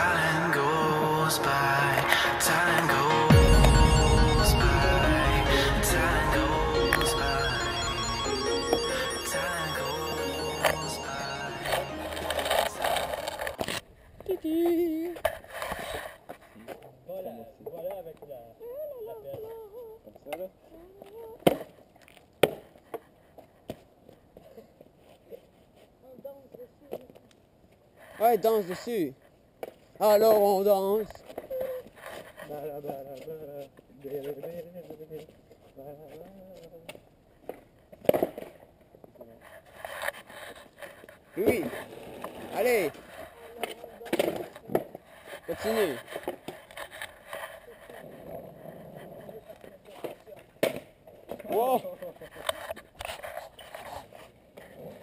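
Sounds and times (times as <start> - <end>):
longboard wheels rolling on asphalt: 41.5 - 45.1.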